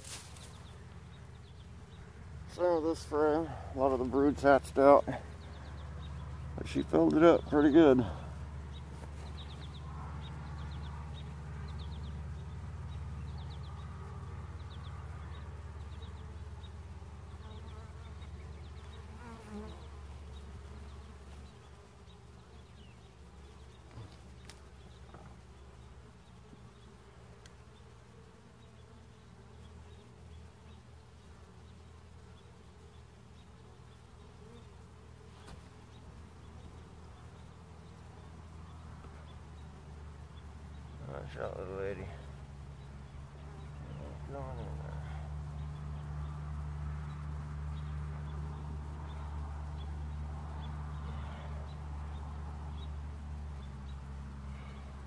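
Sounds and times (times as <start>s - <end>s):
honeybees buzzing: 0.0s - 55.0s.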